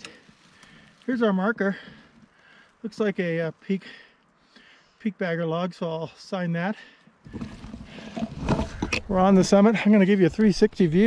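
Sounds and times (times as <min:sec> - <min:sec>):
branches scraping against camera: 0:00.0 - 0:01.3, 0:07.2 - 0:09.6
scattered crackles: 0:00.0 - 0:01.3.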